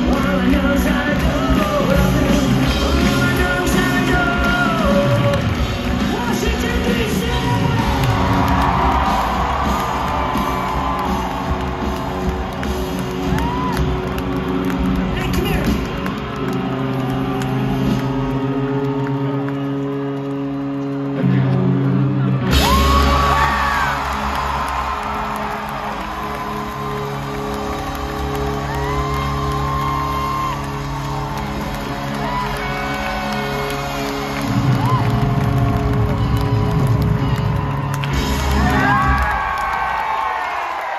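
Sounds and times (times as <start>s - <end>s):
live rock band playing: 0.0s - 40.0s
fans whooping: 0.0s - 40.9s.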